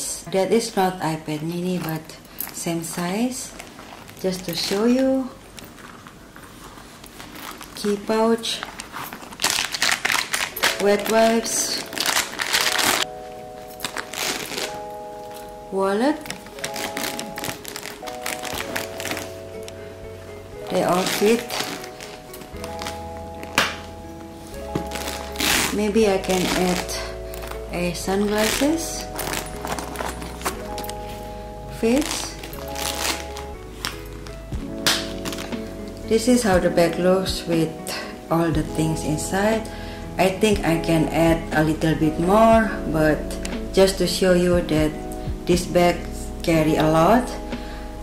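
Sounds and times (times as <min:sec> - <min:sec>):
soft background music: 0:00.0 - 0:48.0
plastic packet crinkling: 0:03.5 - 0:13.1, 0:13.8 - 0:15.4, 0:16.2 - 0:19.8, 0:20.6 - 0:23.8, 0:24.7 - 0:31.3, 0:31.9 - 0:35.7.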